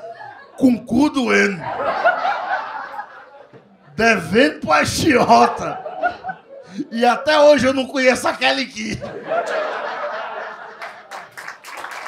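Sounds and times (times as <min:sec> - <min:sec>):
audience laughing: 0:00.0 - 0:12.0.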